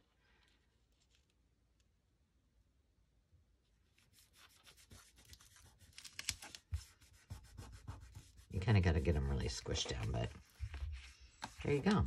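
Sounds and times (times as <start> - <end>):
fingertips rubbing paper sticker: 4.1 - 12.0.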